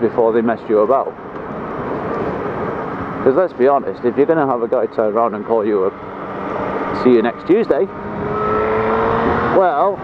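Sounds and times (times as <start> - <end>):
motorcycle wind and riding noise: 0.0 - 10.0.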